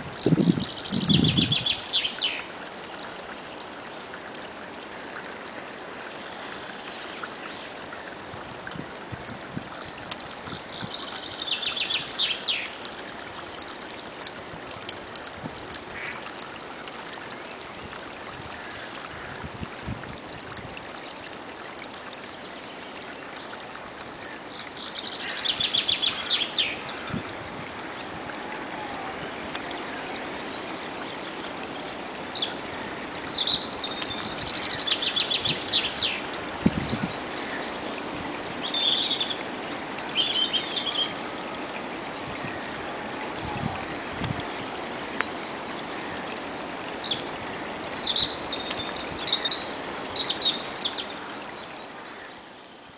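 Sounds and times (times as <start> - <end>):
brook running: 0.0 - 52.9.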